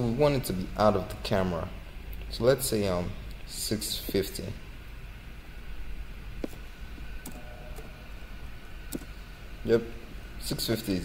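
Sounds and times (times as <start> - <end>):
low hum: 0.0 - 11.0
computer keys clicking: 8.9 - 9.1.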